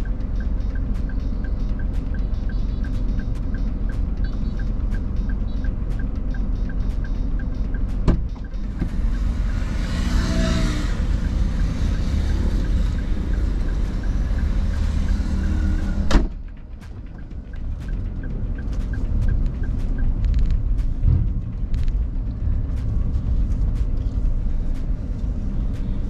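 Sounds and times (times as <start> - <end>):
car engine idling: 0.0 - 26.0
faint even ticking: 0.0 - 26.0
passing engine: 0.0 - 26.0
sharp clicks: 16.8 - 21.0.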